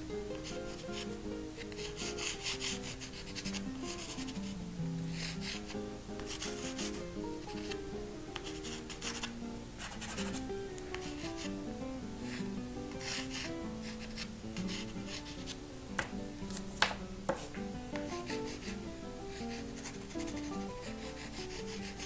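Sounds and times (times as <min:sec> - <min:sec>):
gentle background music: 0:00.0 - 0:22.0
pastel stick scratching paper: 0:00.4 - 0:04.5, 0:05.1 - 0:07.8, 0:08.4 - 0:11.6, 0:12.2 - 0:15.6, 0:16.5 - 0:22.0.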